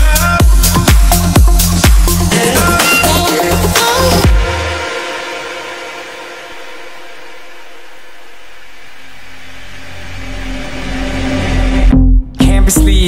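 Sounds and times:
held synth chord: 0:02.4 - 0:12.3
steady synth tone: 0:03.4 - 0:12.4
deep bass note: 0:06.5 - 0:13.0.

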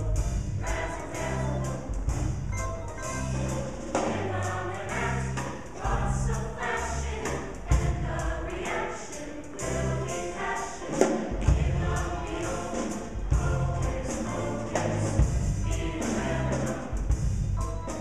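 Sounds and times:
live band playing: 0:00.0 - 0:05.9, 0:10.8 - 0:18.0
choir singing: 0:00.0 - 0:18.0.

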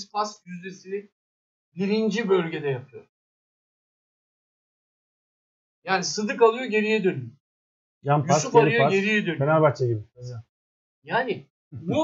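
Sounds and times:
man's word cut off: 0:08.1 - 0:10.0.

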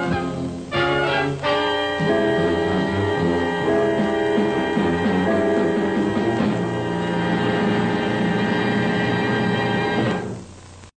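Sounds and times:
tv theme music sustained chord: 0:00.0 - 0:10.4.

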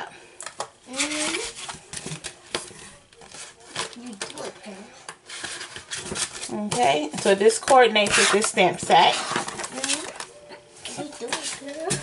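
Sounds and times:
plastic packaging rustling: 0:00.4 - 0:12.0.

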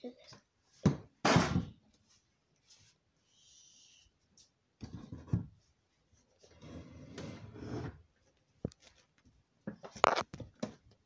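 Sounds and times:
thump: 0:00.8 - 0:01.7.

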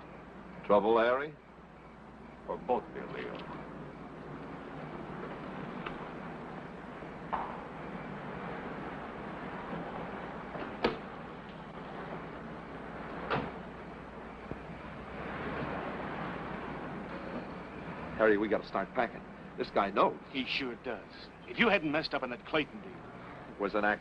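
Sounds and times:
steady hiss: 0:00.0 - 0:24.0
doors shutting: 0:09.6 - 0:14.6.

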